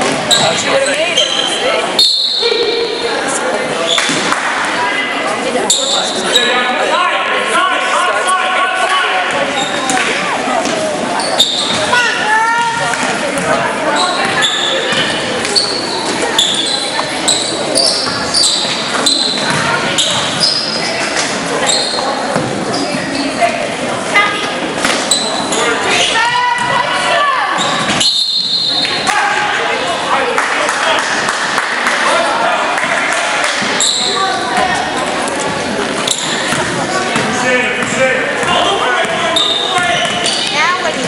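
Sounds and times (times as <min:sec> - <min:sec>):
sneakers squeaking: 0:00.0 - 0:04.4, 0:05.6 - 0:06.7, 0:09.3 - 0:29.2, 0:33.5 - 0:41.0
spectators' voices echoing: 0:00.0 - 0:41.0
people shouting: 0:29.0 - 0:29.8.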